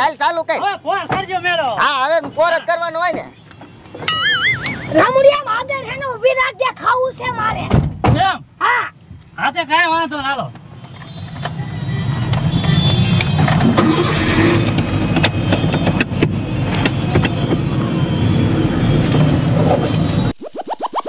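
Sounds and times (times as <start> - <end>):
rising cartoon sound effect: 4.1 - 5.1, 20.4 - 21.0.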